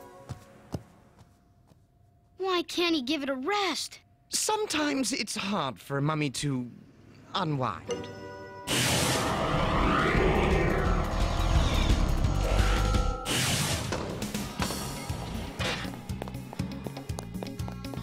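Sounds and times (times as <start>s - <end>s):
cartoon energy blast: 8.7s - 14.0s.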